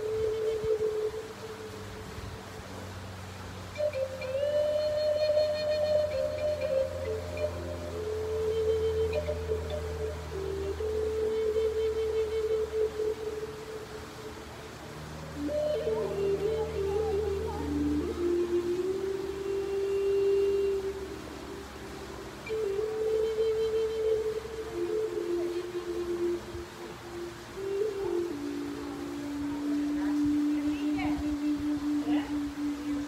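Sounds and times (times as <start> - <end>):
flute playing slow melody: 0.0 - 33.0
low steady drone: 0.0 - 33.0.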